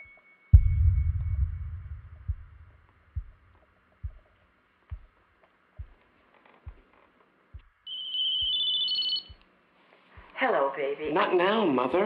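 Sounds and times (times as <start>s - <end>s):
soft low thuds: 0.6s - 5.2s, 5.8s - 6.0s
phone ringtone: 7.9s - 9.3s.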